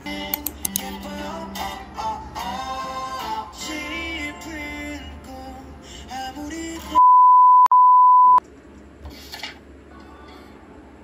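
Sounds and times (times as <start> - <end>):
pop song with guitar and singing: 0.0 - 7.0
electronic beep tone: 7.0 - 8.4.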